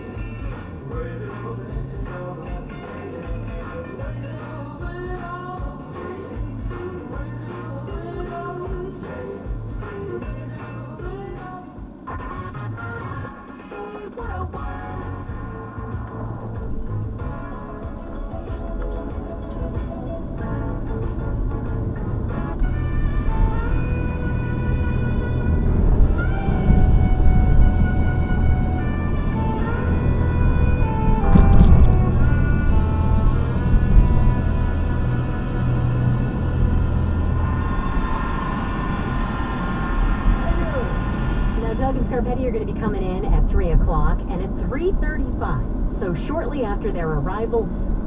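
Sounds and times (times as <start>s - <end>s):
car driving rumble: 0.0s - 13.4s, 14.1s - 48.0s
guitar music on car radio: 0.0s - 48.0s.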